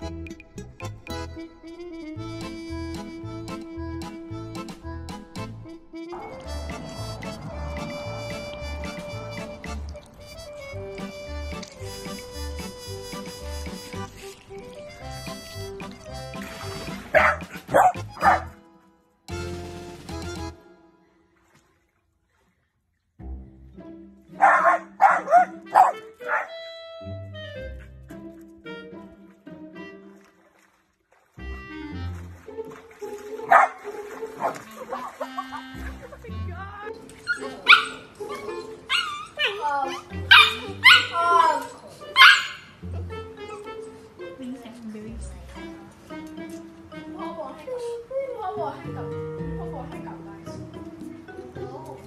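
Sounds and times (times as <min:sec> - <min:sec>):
background music: 0:00.0 - 0:21.4, 0:23.2 - 0:52.0
dog barking: 0:17.1 - 0:18.6, 0:24.4 - 0:26.6, 0:33.5 - 0:33.8, 0:34.4 - 0:34.6, 0:37.4 - 0:38.1, 0:38.9 - 0:41.6, 0:42.2 - 0:42.8.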